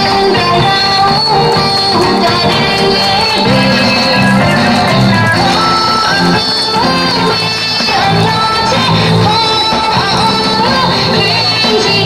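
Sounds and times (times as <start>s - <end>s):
dance music with plucked strings: 0.0s - 12.0s.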